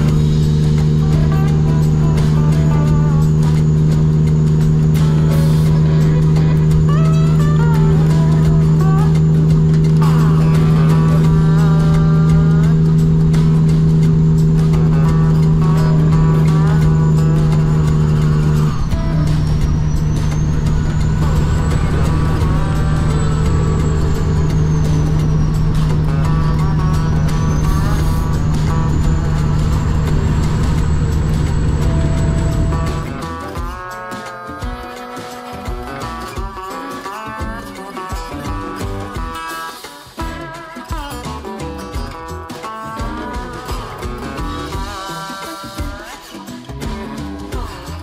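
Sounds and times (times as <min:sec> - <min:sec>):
high whine gliding: 0:00.0 - 0:33.9
diesel truck engine droning: 0:00.0 - 0:34.0
music playing: 0:00.0 - 0:48.0.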